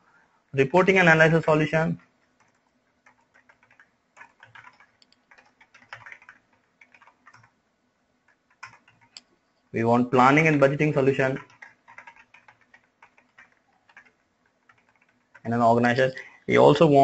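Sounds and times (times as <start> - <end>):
computer keyboard typing: 0.8 - 7.6, 8.2 - 9.3, 10.2 - 16.4.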